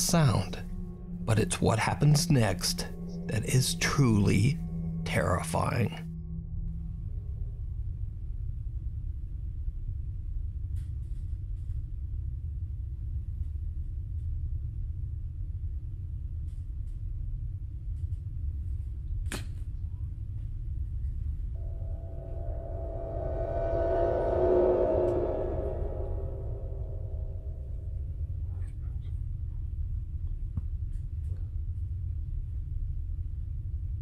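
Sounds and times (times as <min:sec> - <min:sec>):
chord of held tones: 0:00.0 - 0:07.6, 0:21.6 - 0:28.1
low rumbling drone: 0:00.0 - 0:10.7, 0:21.5 - 0:28.5.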